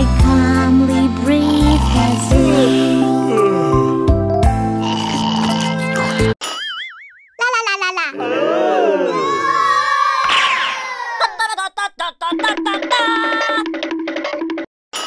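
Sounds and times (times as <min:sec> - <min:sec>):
cartoon boing glides: 0:06.4 - 0:07.4
cartoon warbling tone: 0:12.3 - 0:13.7.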